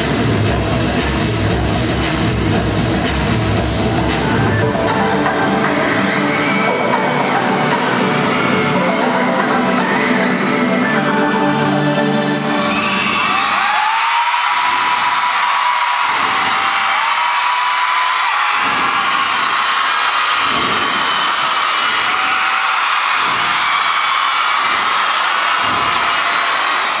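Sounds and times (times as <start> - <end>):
crowd cheering: 3.0 - 27.0
high-pitched screams: 5.6 - 27.0.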